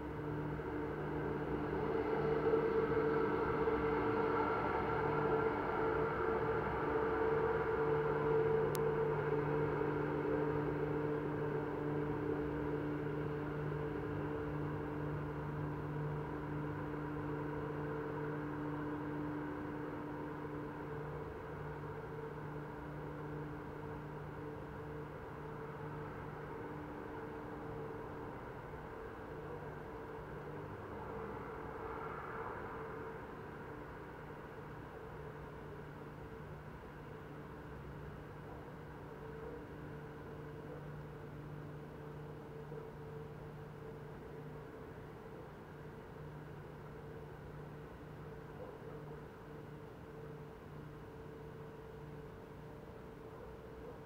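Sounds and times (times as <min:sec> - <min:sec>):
airy background hiss: 0:00.0 - 0:54.0
mechanical hum: 0:00.0 - 0:54.0.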